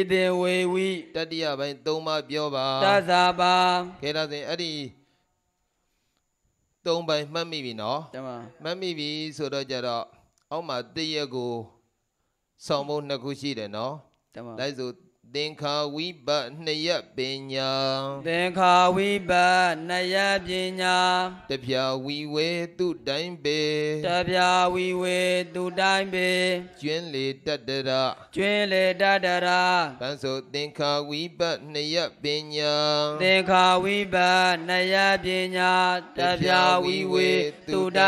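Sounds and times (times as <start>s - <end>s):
man chanting: 0.0s - 5.0s, 12.6s - 38.0s.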